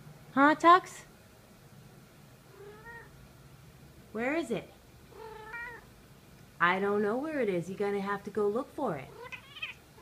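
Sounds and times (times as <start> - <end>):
cat meowing: 2.5 - 3.1, 5.2 - 5.9, 9.1 - 9.8.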